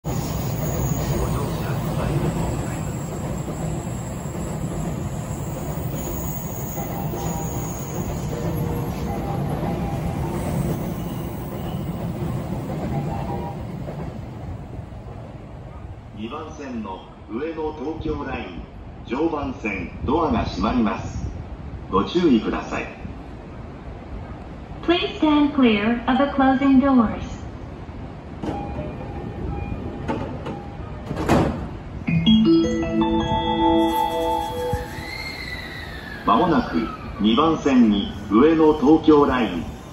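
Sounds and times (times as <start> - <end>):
electric trains rumbling: 0.0 - 39.9
train doors sliding shut: 28.3 - 32.0, 33.7 - 38.6.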